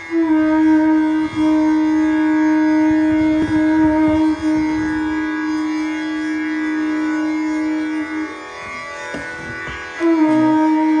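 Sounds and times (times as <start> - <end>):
bamboo flute low note: 0.0 - 8.7, 9.4 - 11.0.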